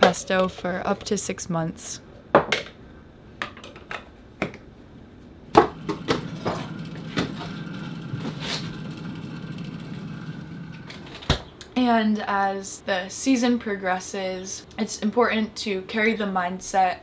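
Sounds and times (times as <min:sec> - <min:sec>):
freezer hum: 0:05.0 - 0:12.4.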